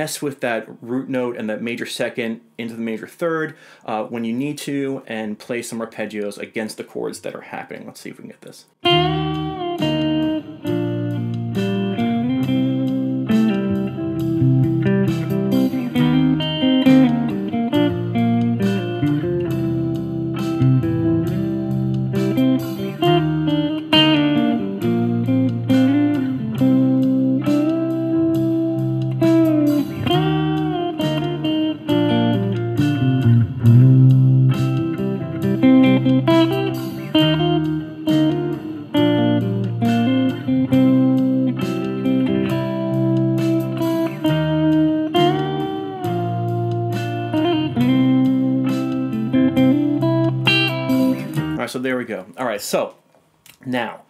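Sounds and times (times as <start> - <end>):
clean electric guitar solo: 8.8 - 51.6.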